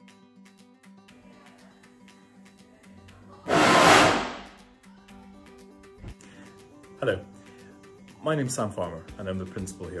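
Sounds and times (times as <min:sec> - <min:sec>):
background music with steady beat: 0:00.0 - 0:10.0
rush of flame: 0:03.5 - 0:04.5.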